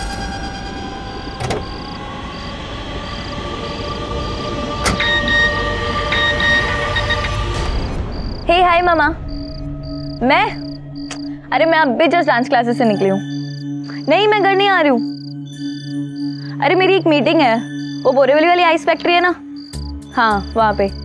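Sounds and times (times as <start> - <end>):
background music with sustained tones: 0.0 - 21.0.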